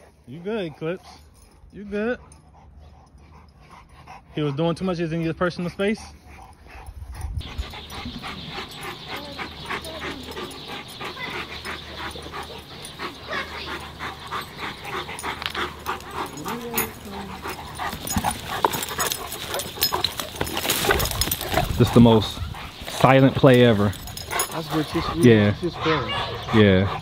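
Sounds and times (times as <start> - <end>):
dogs panting: 0.0 - 27.0.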